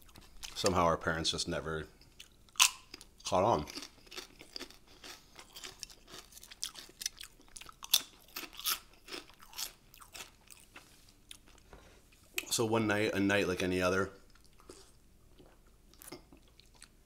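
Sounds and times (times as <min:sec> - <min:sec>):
chewing crunchy chips: 0:02.0 - 0:11.7, 0:14.3 - 0:17.0.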